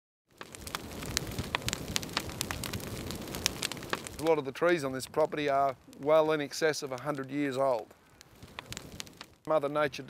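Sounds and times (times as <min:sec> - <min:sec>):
wood fire crackling and popping: 0:00.3 - 0:10.0.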